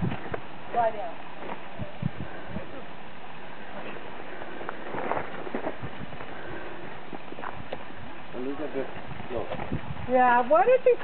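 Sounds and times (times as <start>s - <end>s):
footsteps on gravel road: 0.0s - 1.7s, 3.8s - 8.2s
sheep hooves on gravel road: 0.0s - 1.7s, 3.8s - 11.0s.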